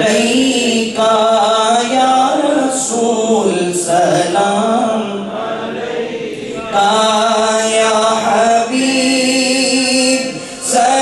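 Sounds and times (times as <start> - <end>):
man chanting into a microphone: 0.0 - 5.4, 6.3 - 11.0.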